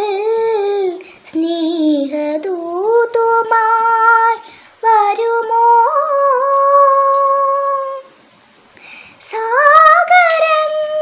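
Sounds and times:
girl singing unaccompanied: 0.0 - 8.2, 9.1 - 11.0.

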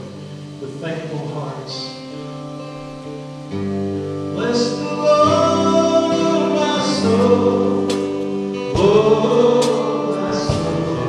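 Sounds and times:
worship band playing gospel song: 0.0 - 11.0
voices singing: 4.4 - 11.0.

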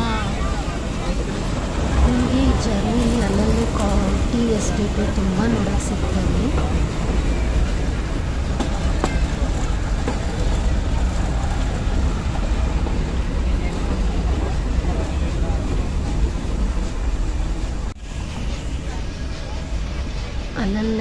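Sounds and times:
wheels clicking on rails: 0.0 - 20.9
train coach rumble: 0.0 - 21.0.

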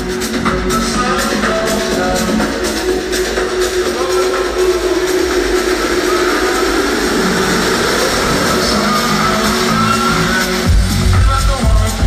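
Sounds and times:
loud techno music: 0.0 - 12.0.

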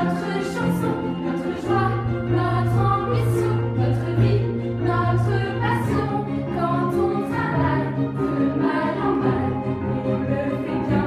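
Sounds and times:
instrumental accompaniment: 0.0 - 11.0
voices singing together: 0.0 - 11.0.

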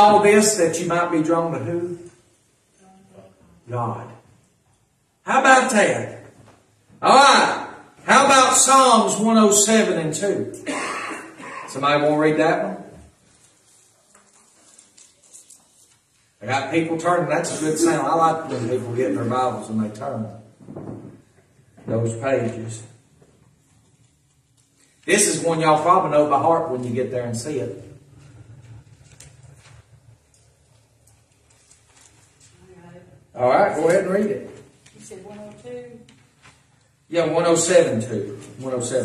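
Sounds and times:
thin pages turning: 13.2 - 16.4, 28.8 - 32.6.

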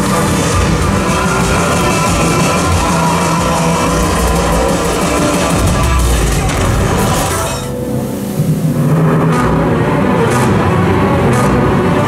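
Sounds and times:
show music over loudspeakers: 0.0 - 12.0.

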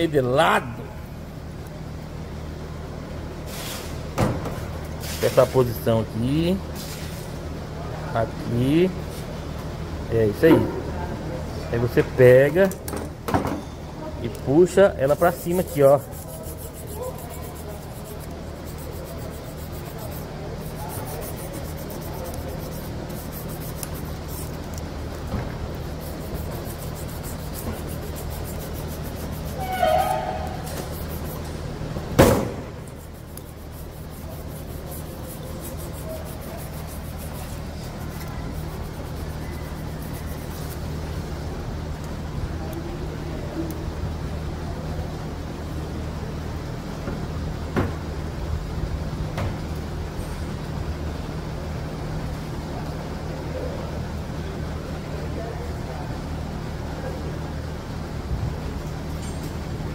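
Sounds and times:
steady low hum: 0.0 - 59.9
faint metal scrapes: 27.0 - 31.5.

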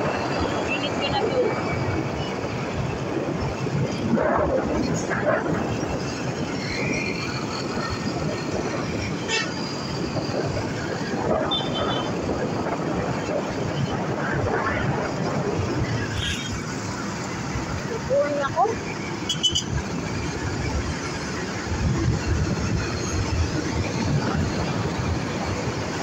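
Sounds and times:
passing vehicles: 0.0 - 26.0
wind rushing over microphone: 0.0 - 26.0.

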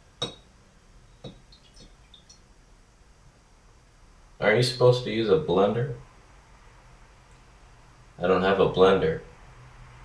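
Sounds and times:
utensil clinking glass jar: 0.2 - 0.4.

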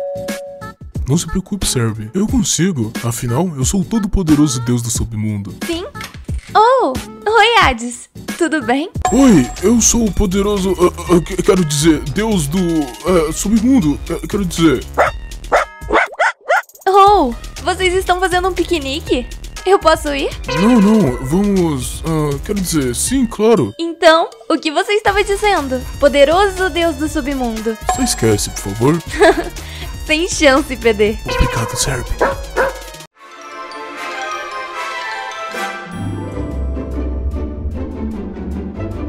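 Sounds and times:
light background music: 0.0 - 16.0, 16.8 - 39.0
puppy yipping: 15.0 - 16.7, 32.2 - 32.8.

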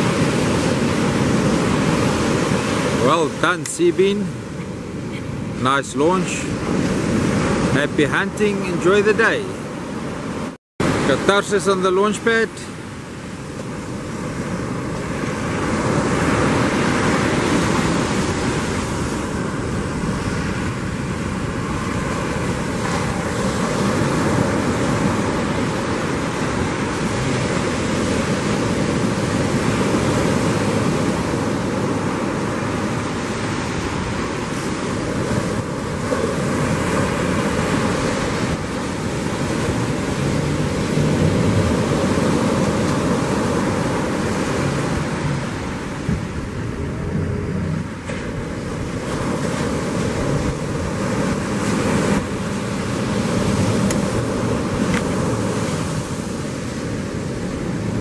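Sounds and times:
wind buffeting microphone: 0.0 - 11.1, 12.8 - 58.0
ocean surf breaking: 0.0 - 58.0.

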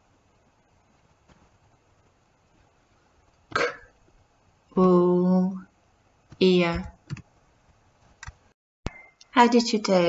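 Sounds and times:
computer keyboard clicks: 7.0 - 7.3.

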